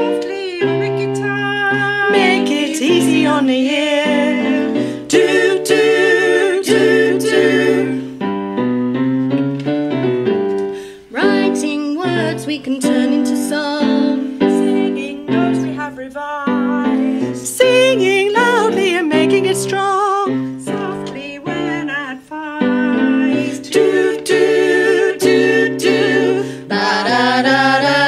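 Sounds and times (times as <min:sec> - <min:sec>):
women's vocal group singing pop: 0:00.0 - 0:08.2, 0:11.1 - 0:19.8, 0:20.7 - 0:28.0
keyboard accompaniment: 0:00.0 - 0:28.0.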